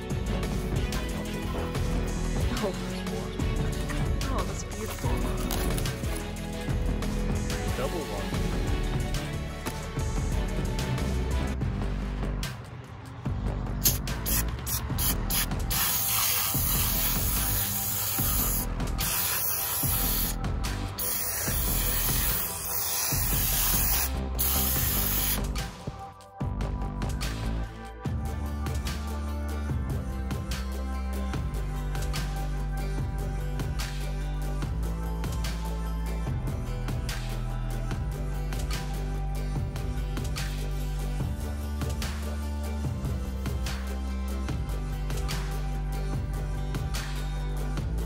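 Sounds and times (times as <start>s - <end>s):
background music: 0.0s - 48.0s
aerosol spray hissing: 13.8s - 20.4s, 21.0s - 25.4s.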